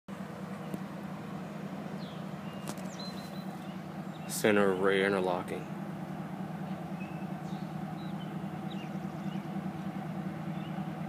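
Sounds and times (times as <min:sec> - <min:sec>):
distant diesel locomotives droning: 0:00.1 - 0:11.0
faint bird chirps: 0:00.6 - 0:04.5, 0:06.6 - 0:11.0.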